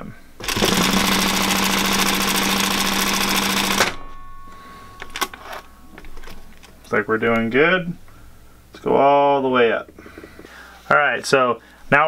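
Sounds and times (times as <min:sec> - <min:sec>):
faint motor hum: 0:00.0 - 0:12.0
sewing machine stitching: 0:00.4 - 0:04.0.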